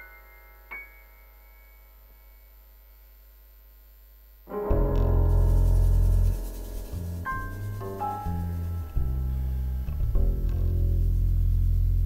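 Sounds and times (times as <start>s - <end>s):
cymbal hiss: 4.5s - 9.9s
piano chord ringing: 4.5s - 11.2s
deep sustained bass note: 4.5s - 12.0s.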